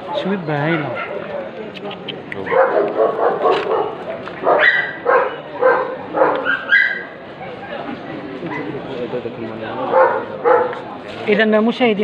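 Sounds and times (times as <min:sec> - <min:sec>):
voices: 0:00.0 - 0:12.0
dog barking in short yips: 0:02.5 - 0:07.0.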